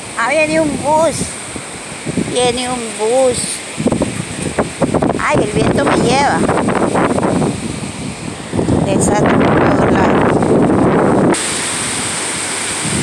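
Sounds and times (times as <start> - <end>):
gusty wind buffeting microphone: 0.0 - 13.0.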